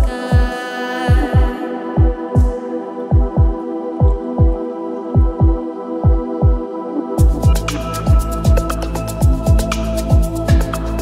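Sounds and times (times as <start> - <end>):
deep kick drum thumps: 1.1 - 4.6, 5.2 - 6.6, 7.2 - 8.6, 9.2 - 10.7
synth pad chords: 1.6 - 11.0.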